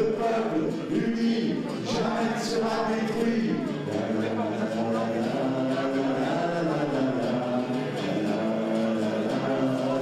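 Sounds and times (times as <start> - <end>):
acoustic guitar: 0.0 - 10.0
audience singing in unison: 0.0 - 10.0.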